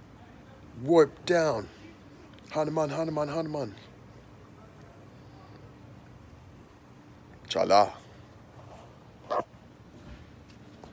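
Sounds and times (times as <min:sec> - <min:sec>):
dog barking: 0:09.2 - 0:09.5.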